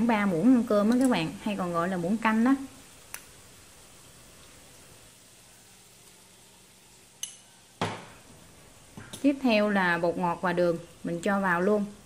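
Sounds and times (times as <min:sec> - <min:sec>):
faint steady hiss: 0:00.0 - 0:12.0
kitchenware knock: 0:07.8 - 0:08.2.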